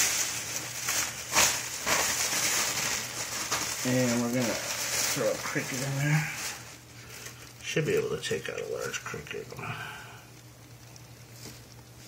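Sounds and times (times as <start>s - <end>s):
handling rustling and scraping: 0.0s - 8.1s, 10.4s - 12.0s
steady hiss: 0.0s - 12.0s.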